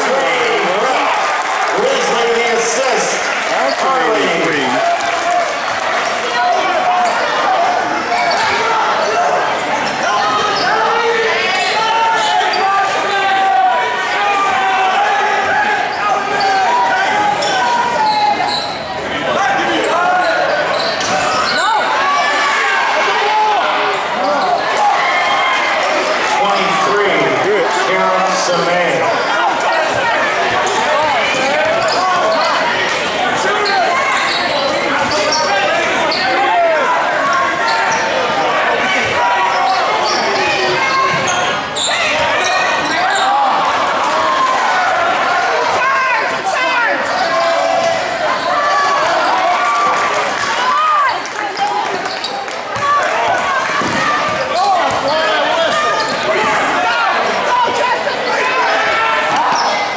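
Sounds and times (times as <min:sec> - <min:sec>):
crowd shouting and talking: 0:00.0 - 0:59.9.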